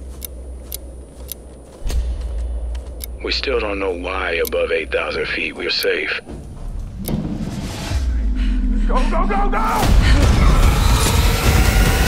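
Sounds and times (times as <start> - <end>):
low rumble: 0.0 - 12.0
rough low drone: 0.0 - 12.0
whoosh: 6.7 - 10.0.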